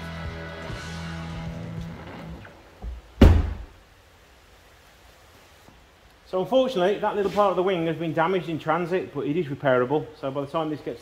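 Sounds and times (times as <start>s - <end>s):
background music: 0.0s - 2.8s
loud deep thud: 3.2s - 3.8s.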